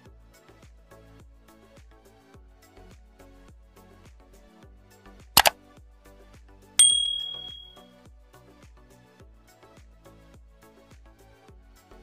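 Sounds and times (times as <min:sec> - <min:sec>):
bright bell ding: 0:06.8 - 0:07.8
sharp double click: 0:06.8 - 0:07.8.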